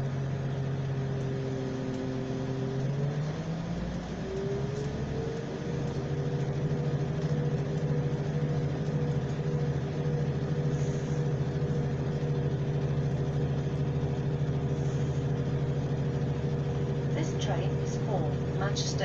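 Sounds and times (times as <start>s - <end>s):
train diesel engine droning: 0.0s - 19.0s
wheel and rail noise: 0.0s - 19.0s.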